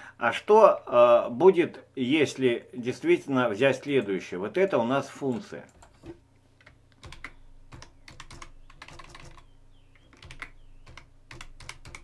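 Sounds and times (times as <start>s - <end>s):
computer keyboard typing: 5.8s - 12.0s.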